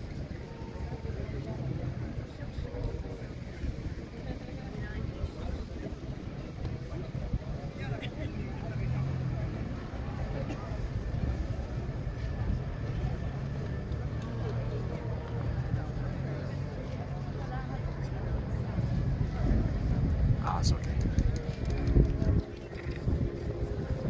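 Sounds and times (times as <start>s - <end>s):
many people talking indistinctly: 0.0s - 24.0s.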